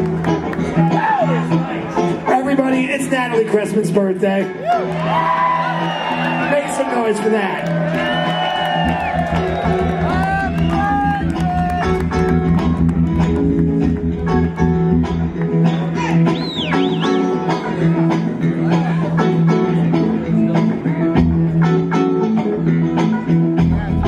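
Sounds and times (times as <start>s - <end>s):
electric guitars: 0.0s - 24.0s
bass line: 8.0s - 24.0s
steady drum beat: 8.8s - 15.0s.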